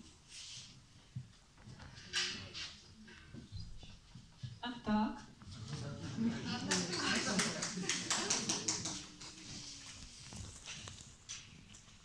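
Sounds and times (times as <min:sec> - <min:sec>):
sharp hand claps: 0:06.7 - 0:09.4.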